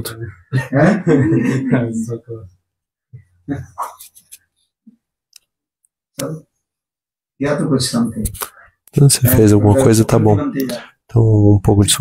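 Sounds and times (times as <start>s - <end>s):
man speaking close to microphone: 7.4s - 12.0s.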